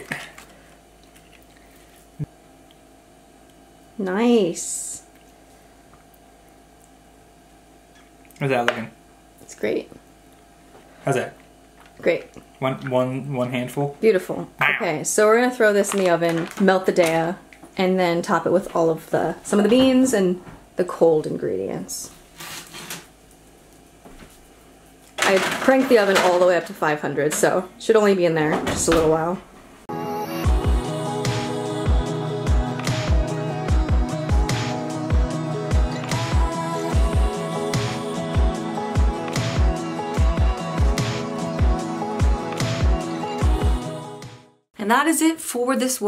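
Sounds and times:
low steady hum: 0:00.0 - 0:39.4.

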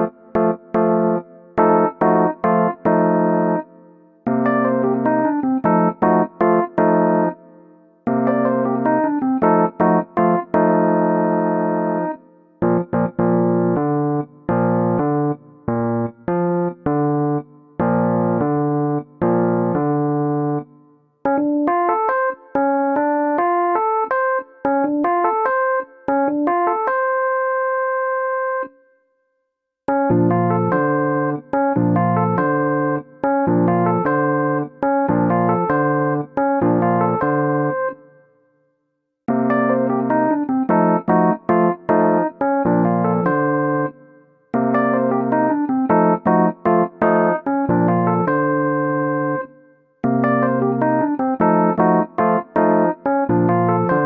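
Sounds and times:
keyboard playing piano chords: 0:00.0 - 0:28.8, 0:29.9 - 0:38.3, 0:39.3 - 0:54.0.

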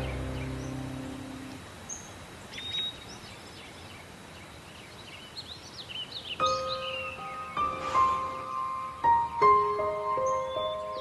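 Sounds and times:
background music: 0:00.0 - 0:01.6, 0:06.5 - 0:11.0
high bird chirps: 0:00.0 - 0:03.0
steady low hiss: 0:00.0 - 0:11.0.

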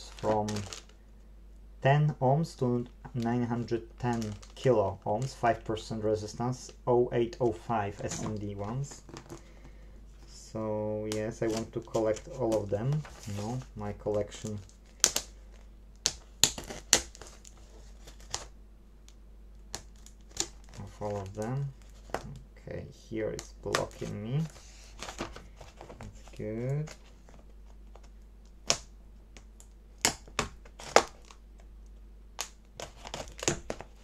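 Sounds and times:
tape and packaging crinkling: 0:00.0 - 0:01.0, 0:02.7 - 0:18.5, 0:19.6 - 0:22.4, 0:23.2 - 0:31.7, 0:32.4 - 0:34.0.

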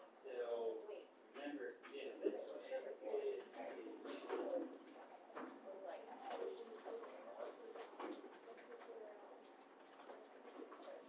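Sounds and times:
muffled voices talking quietly: 0:00.0 - 0:11.0.

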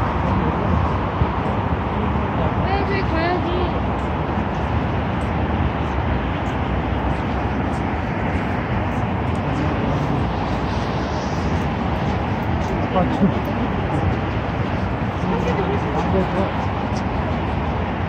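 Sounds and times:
passers-by talking: 0:00.0 - 0:18.0
road traffic noise: 0:00.0 - 0:18.0.

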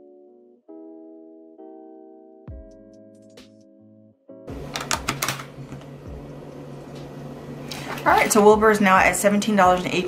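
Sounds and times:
background piano music: 0:00.0 - 0:10.0.

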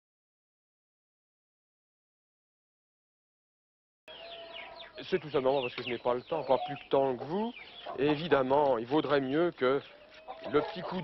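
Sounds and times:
birds chirping: 0:04.1 - 0:11.0.

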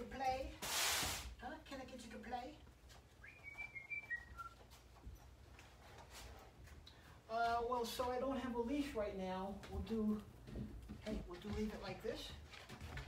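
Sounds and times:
person speaking: 0:00.0 - 0:00.7, 0:07.2 - 0:12.5
person whistling: 0:03.2 - 0:04.6.

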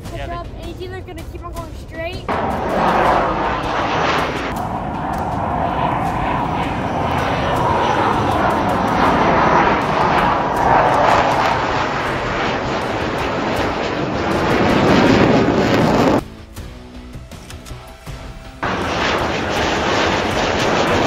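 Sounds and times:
jet engines roaring overhead: 0:02.3 - 0:16.2, 0:18.1 - 0:21.0.

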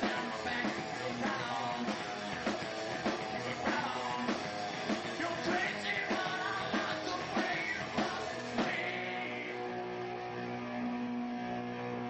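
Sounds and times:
electric guitars and bass chord: 0:00.0 - 0:12.0.

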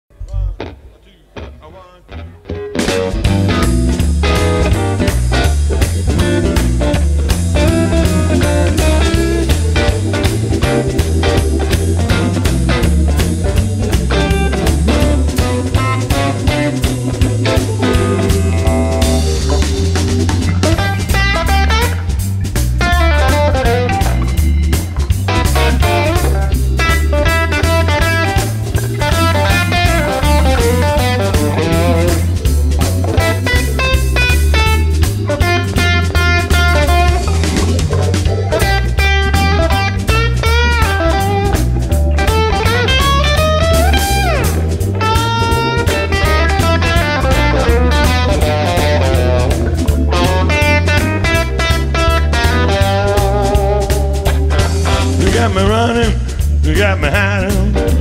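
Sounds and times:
bass line: 0:00.1 - 0:58.0
drum kit: 0:00.1 - 0:58.0
electric guitar lead lines: 0:00.2 - 0:58.0.

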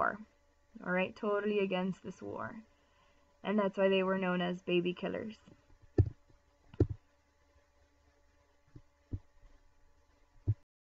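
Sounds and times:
faint steady hum: 0:00.0 - 0:10.7
dull low thumps: 0:05.9 - 0:06.2.

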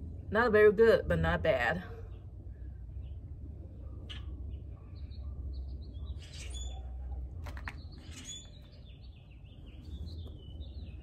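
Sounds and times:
steady low rumble: 0:00.0 - 0:11.0
small birds chirping: 0:01.9 - 0:11.0.

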